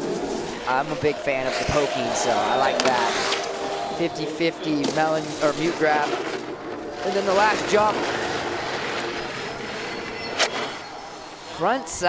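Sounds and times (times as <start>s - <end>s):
snowboard scraping over snow: 0.0s - 12.0s.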